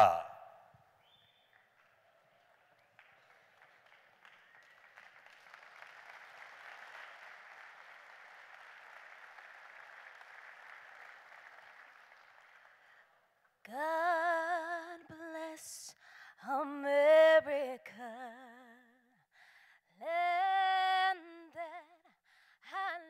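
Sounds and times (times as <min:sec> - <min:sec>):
faint audience applause: 0:01.2 - 0:13.4.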